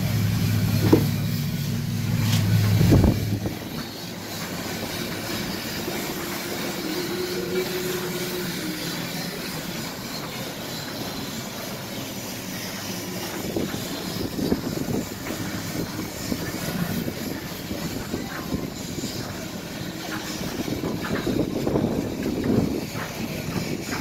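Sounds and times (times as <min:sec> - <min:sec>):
wind buffeting microphone: 0:02.5 - 0:03.8, 0:13.3 - 0:24.0.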